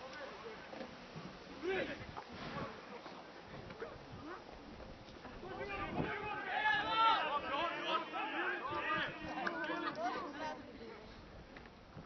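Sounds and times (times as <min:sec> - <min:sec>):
rough field noise: 0:00.0 - 0:12.0
people shouting outdoors: 0:05.3 - 0:10.7.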